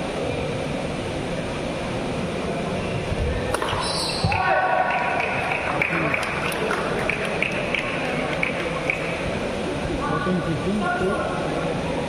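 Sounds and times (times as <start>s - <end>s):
shuttlecock hits: 3.5s - 5.4s
drawn-out shout: 4.3s - 5.6s.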